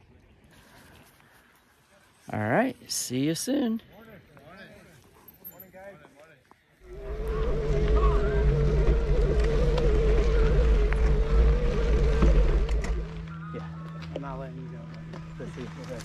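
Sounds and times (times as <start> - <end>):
wind rushing over microphone: 6.8 - 13.4
wavering whine: 6.8 - 16.0.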